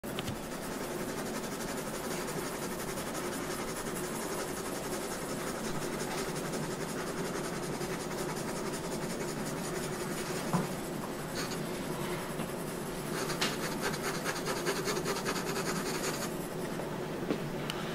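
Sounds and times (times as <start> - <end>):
pencil drawing on paper: 0.2 - 16.6.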